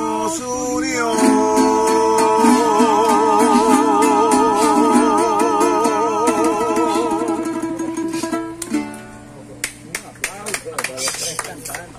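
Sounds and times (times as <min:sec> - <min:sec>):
men singing with vibrato: 0:00.0 - 0:08.0
acoustic guitar strumming: 0:00.0 - 0:09.6.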